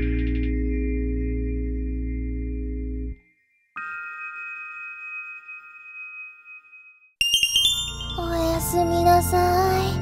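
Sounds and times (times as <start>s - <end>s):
struck chime ringing: 3.3s - 8.8s.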